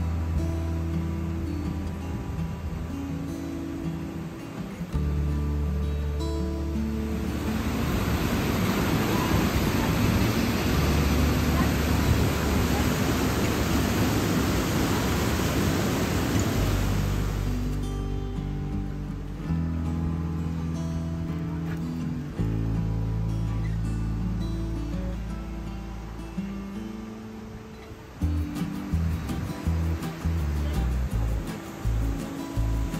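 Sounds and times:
background music with held notes: 0:00.0 - 0:15.2, 0:16.2 - 0:32.9
stream rushing over rocks: 0:00.0 - 0:32.9.

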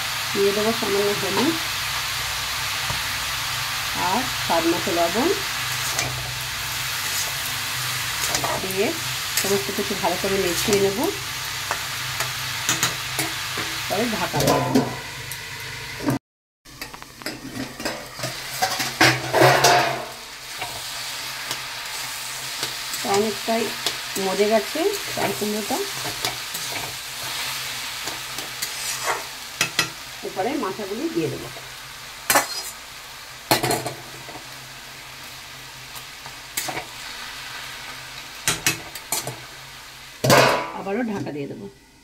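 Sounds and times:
vegetables sizzling in oil: 0:00.0 - 0:42.0
metal spatula scraping pan: 0:11.7 - 0:15.0, 0:24.9 - 0:30.0, 0:32.3 - 0:32.8.

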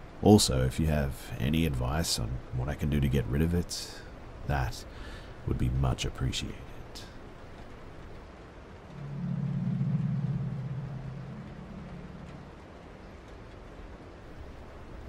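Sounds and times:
faint hiss: 0:00.0 - 0:15.0
low ambient synth drone: 0:08.8 - 0:15.0.

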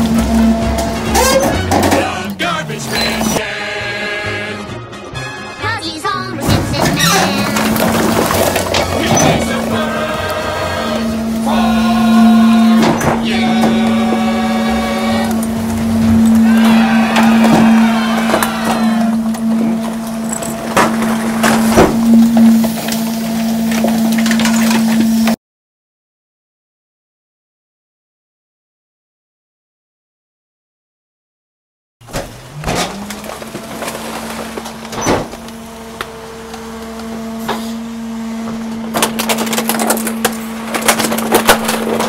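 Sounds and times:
garbage truck hydraulic hum: 0:00.0 - 0:03.4, 0:06.4 - 0:25.4, 0:32.0 - 0:42.0
plastic toys cracking and snapping: 0:39.0 - 0:42.0.

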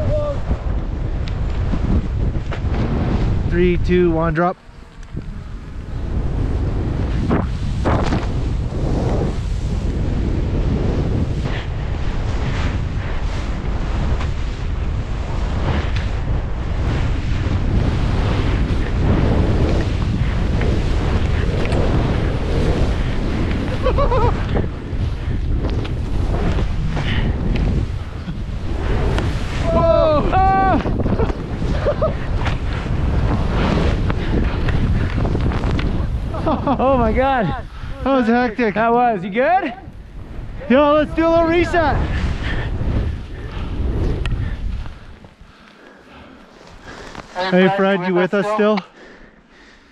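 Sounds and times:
skis whooshing through snow: 0:00.0 - 0:04.3, 0:04.9 - 0:49.9
wind on microphone: 0:00.0 - 0:48.7.

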